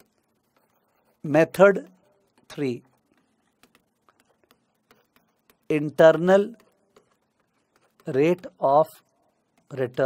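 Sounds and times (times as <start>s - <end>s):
stylus tapping on screen: 2.0s - 8.5s.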